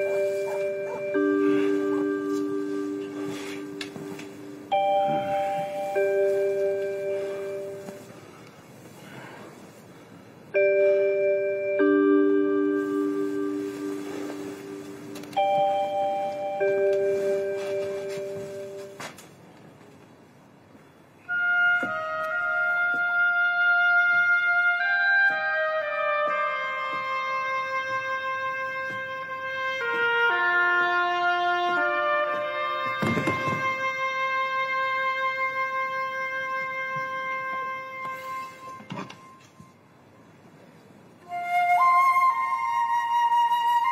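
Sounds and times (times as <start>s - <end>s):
sustained bell-like tones: 0.0s - 8.1s, 10.6s - 19.0s
slow brass and wind score: 0.0s - 19.0s, 20.9s - 43.9s
low noisy thud: 32.9s - 33.8s.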